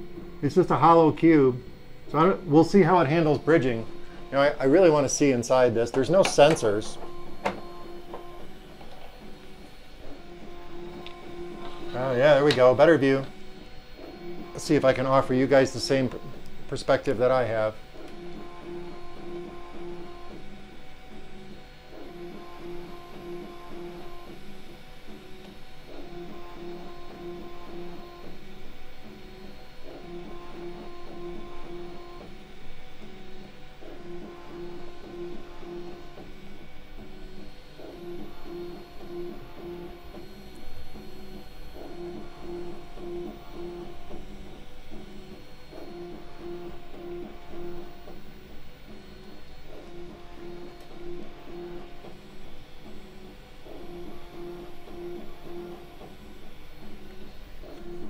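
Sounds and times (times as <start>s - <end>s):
stepper motors whining: 0.0s - 58.0s.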